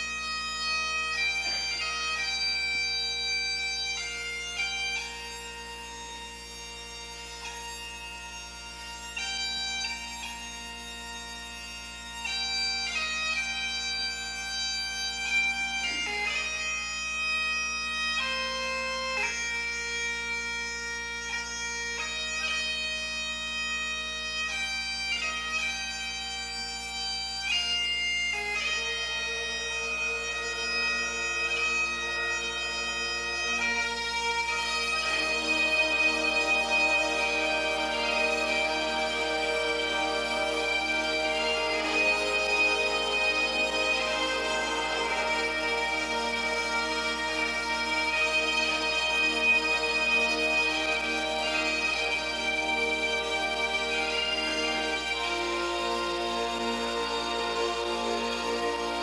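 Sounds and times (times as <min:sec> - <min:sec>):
bagpipe music: 0:00.0 - 0:59.0.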